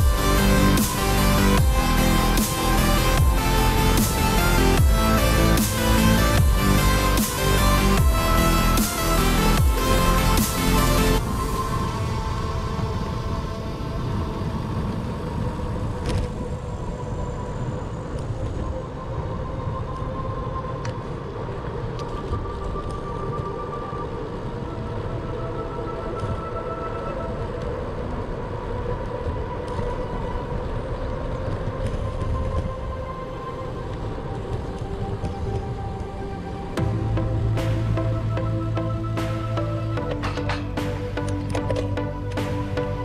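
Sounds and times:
bicycle tyre rumble: 0:09.6 - 0:38.0
wind rushing over microphone: 0:09.6 - 0:39.1.

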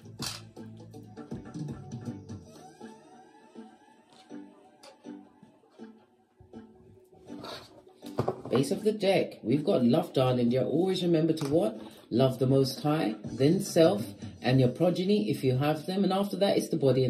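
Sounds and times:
plucked string music: 0:00.0 - 0:02.2, 0:03.5 - 0:08.9.

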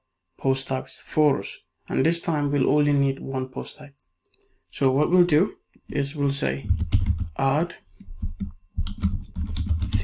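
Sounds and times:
computer keyboard typing: 0:06.6 - 0:10.0.

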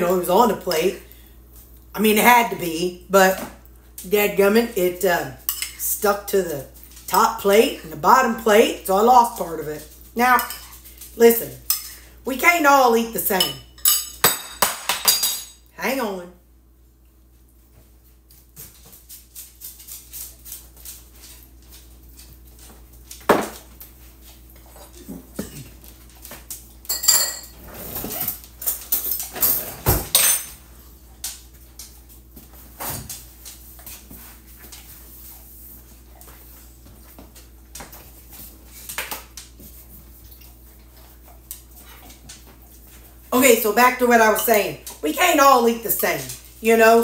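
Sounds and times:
spoon and dishes clattering: 0:13.4 - 0:15.6, 0:26.8 - 0:27.6.

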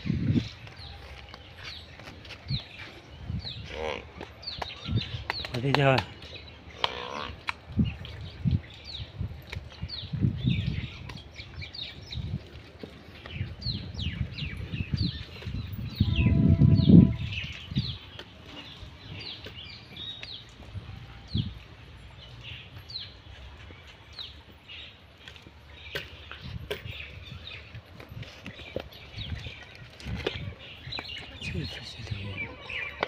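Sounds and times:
small birds chirping: 0:00.1 - 0:33.0.

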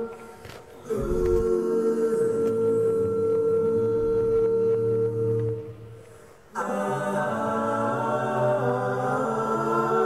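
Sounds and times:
a cappella vocal harmony: 0:00.0 - 0:10.0.

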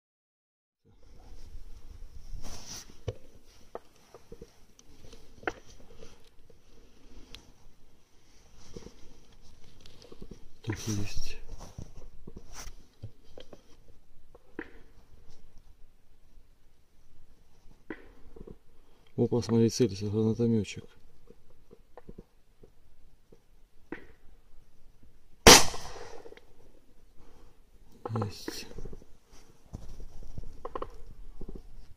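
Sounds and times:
rustle near microphone: 0:00.9 - 0:23.6, 0:24.6 - 0:31.9
rifle shot with echo: 0:25.4 - 0:26.4.

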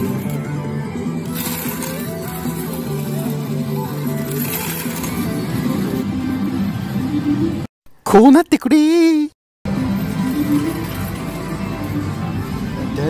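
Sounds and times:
music: 0:00.0 - 0:07.7, 0:09.7 - 0:13.0
metal tokens clinking: 0:01.2 - 0:06.0.

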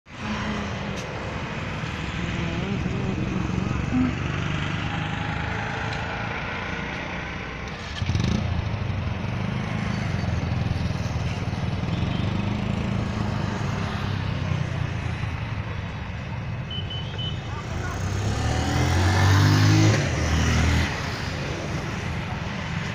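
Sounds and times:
indistinct voices: 0:00.1 - 0:06.0.

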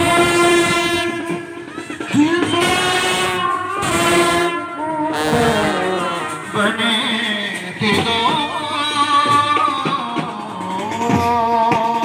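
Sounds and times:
brass band holding a note: 0:00.0 - 0:01.6, 0:02.4 - 0:07.0.

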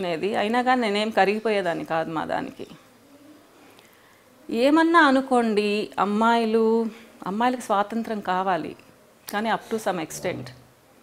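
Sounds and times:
faint dove cooing: 0:02.8 - 0:03.7
woman's voice: 0:04.5 - 0:10.6.

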